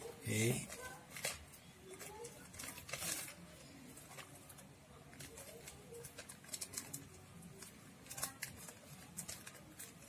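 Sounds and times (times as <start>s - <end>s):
foil balloon crinkling: 0.0s - 10.0s.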